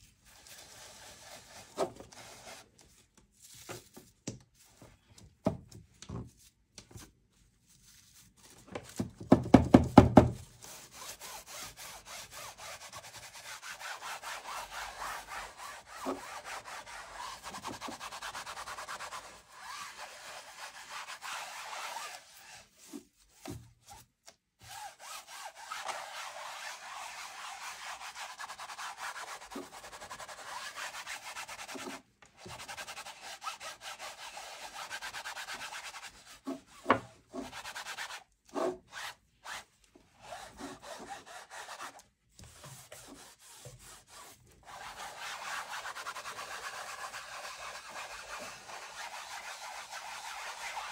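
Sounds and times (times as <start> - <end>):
cotton swishing over metal leaf: 13.7 - 24.0, 24.7 - 31.9.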